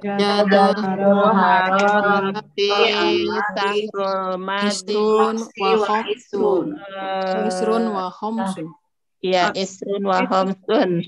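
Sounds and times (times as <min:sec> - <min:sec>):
person chanting: 0:00.0 - 0:08.6.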